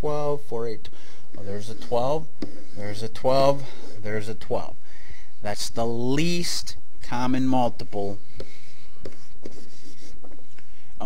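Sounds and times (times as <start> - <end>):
pen scratching on surface: 8.3 - 10.4.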